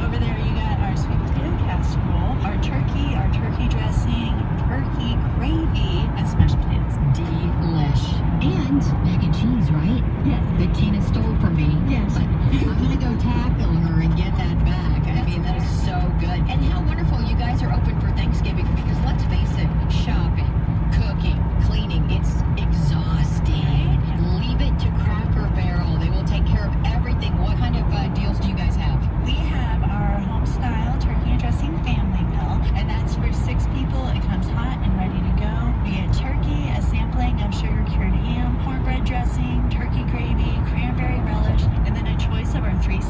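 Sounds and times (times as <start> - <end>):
car cabin road rumble: 0.0 - 43.0
indistinct talk: 0.0 - 43.0.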